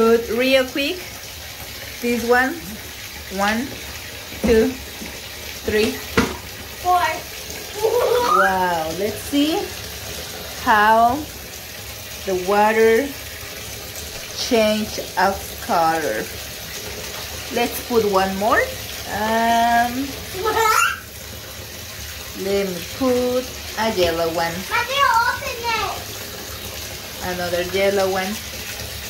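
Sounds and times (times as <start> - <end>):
tap filling bathtub: 0.0 - 29.0
person asking a question: 24.0 - 26.0.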